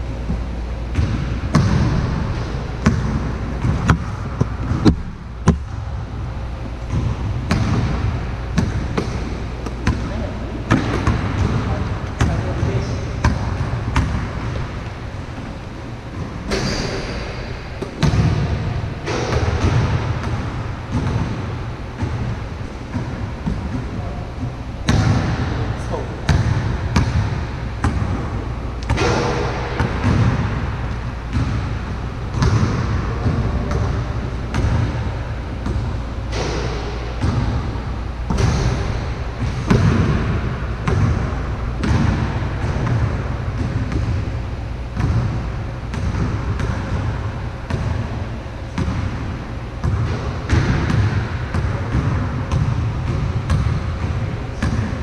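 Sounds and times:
basketball bouncing on a court: 0:00.2 - 0:14.8, 0:16.0 - 0:55.0
players' voices: 0:09.5 - 0:13.7, 0:23.0 - 0:26.5.

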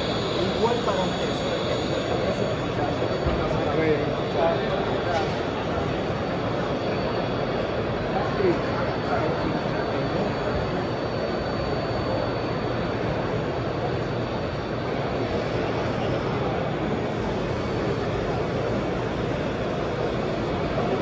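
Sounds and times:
exhibition hall din: 0:00.0 - 0:21.0.

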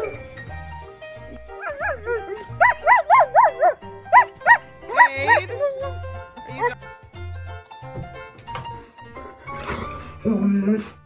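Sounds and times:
dog whining yips: 0:01.4 - 0:06.0.

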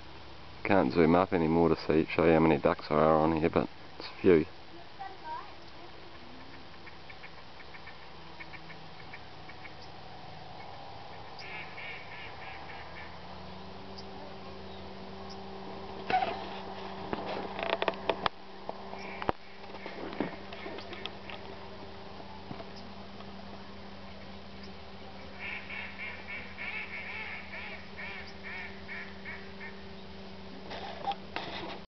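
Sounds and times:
steady low hum: 0:00.0 - 0:31.8
ducks quacking: 0:06.0 - 0:13.5, 0:19.0 - 0:21.4, 0:25.1 - 0:29.9.

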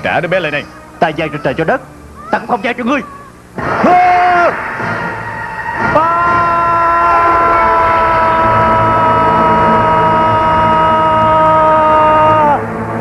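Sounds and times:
man screaming: 0:05.9 - 0:12.6.

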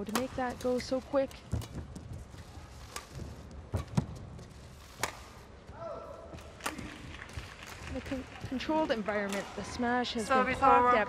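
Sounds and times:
racket hitting shuttlecock: 0:02.8 - 0:05.4, 0:06.3 - 0:09.8.

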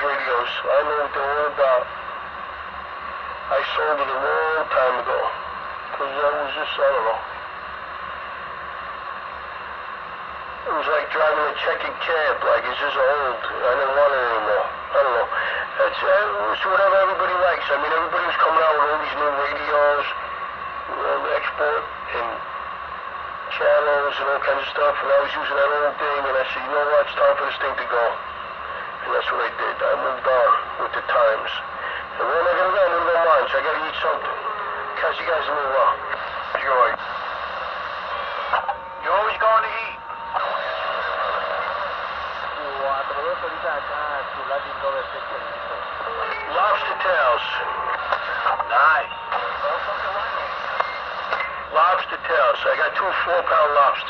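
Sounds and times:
voices over radio: 0:00.0 - 0:02.1, 0:03.3 - 0:07.4, 0:10.6 - 0:54.0
radio hiss: 0:00.0 - 0:54.0.

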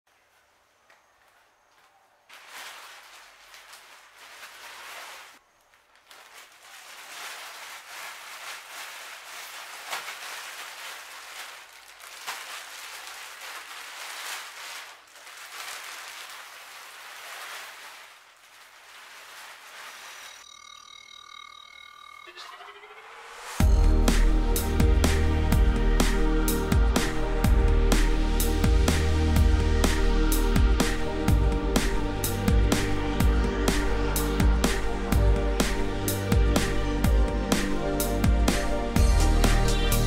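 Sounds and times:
plastic wrapping crinkling: 0:01.1 - 0:20.4.

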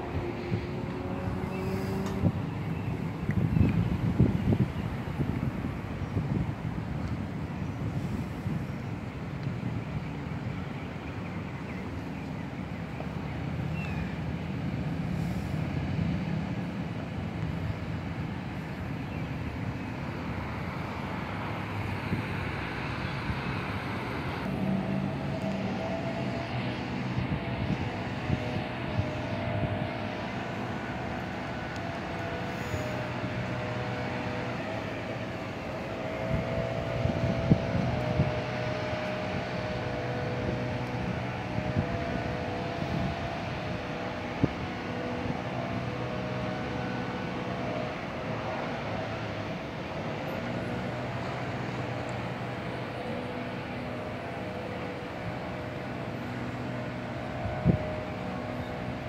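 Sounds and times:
distant locomotive rumble: 0:00.0 - 0:59.0
faint held horn tones: 0:00.4 - 0:02.6, 0:24.3 - 0:59.0.

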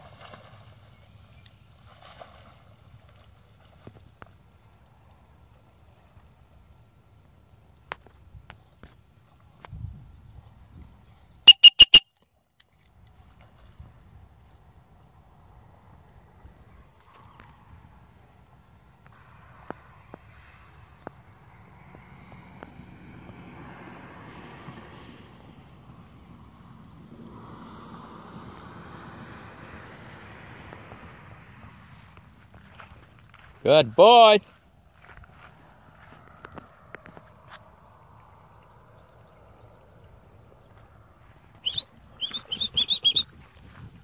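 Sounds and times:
high-pitched whistle blasts: 0:11.5 - 0:12.1, 0:41.6 - 0:43.3.

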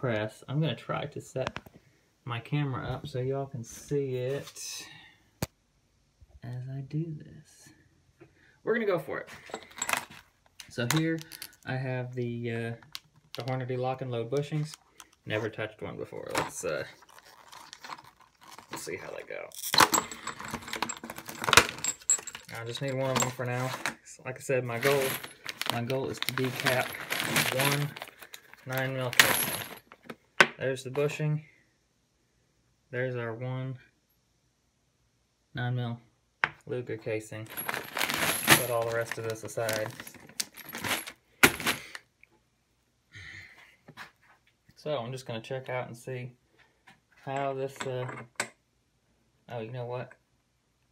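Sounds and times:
brass cartridge cases clinking: 0:09.4 - 0:11.7, 0:19.5 - 0:24.0, 0:24.7 - 0:30.1, 0:37.5 - 0:42.0
plastic packaging crinkling: 0:17.0 - 0:18.8, 0:24.7 - 0:30.1, 0:37.5 - 0:42.0
plastic bag rustling: 0:17.0 - 0:18.9, 0:24.7 - 0:30.1, 0:37.5 - 0:42.0.

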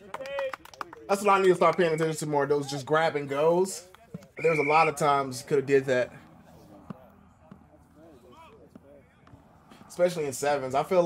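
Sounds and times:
distant players calling: 0:00.0 - 0:11.0.

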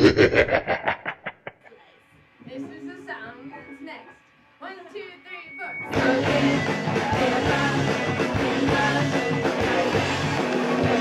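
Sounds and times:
person laughing: 0:00.0 - 0:01.8.

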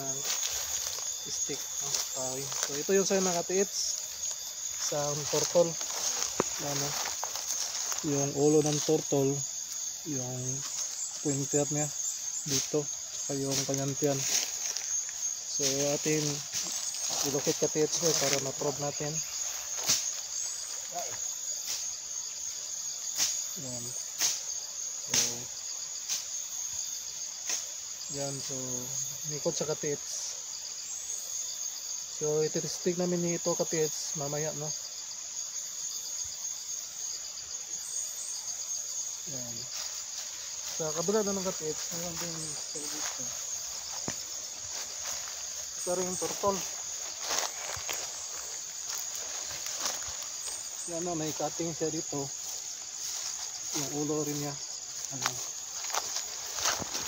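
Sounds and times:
high-pitched insect chorus: 0:00.0 - 0:57.0.

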